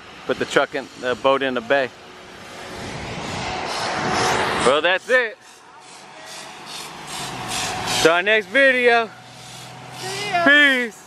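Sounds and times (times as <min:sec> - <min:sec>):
vehicle passing by: 0:01.2 - 0:11.0.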